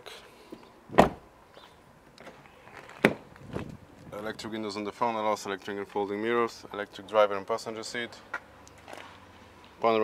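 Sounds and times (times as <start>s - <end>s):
car door shutting thump: 0.9s - 1.2s.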